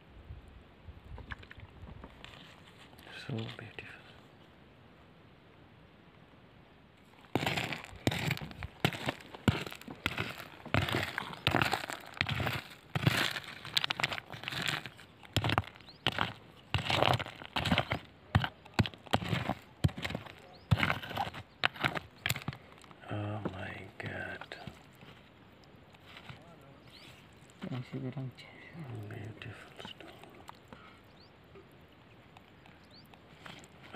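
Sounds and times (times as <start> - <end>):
rock hammer knocking stones: 7.3 - 22.8.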